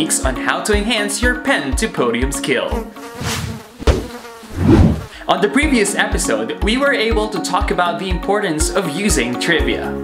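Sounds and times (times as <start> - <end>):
housefly buzzing: 2.7 - 5.2.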